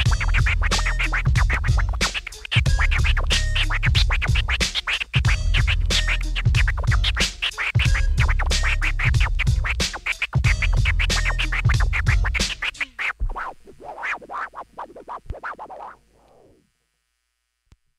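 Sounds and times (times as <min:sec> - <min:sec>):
beat with heavy bass: 0:00.0 - 0:14.3
turntable scratching: 0:00.0 - 0:16.7.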